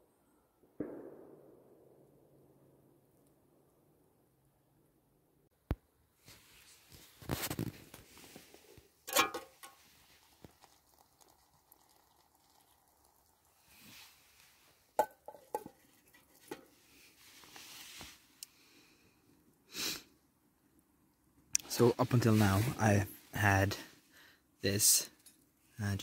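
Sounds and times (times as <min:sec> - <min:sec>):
metal lid clinks and taps: 0:09.1 - 0:09.8, 0:15.0 - 0:15.8.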